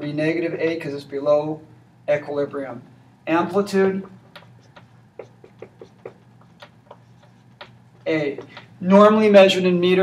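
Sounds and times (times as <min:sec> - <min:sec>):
marker scratching on whiteboard: 0:04.0 - 0:08.7.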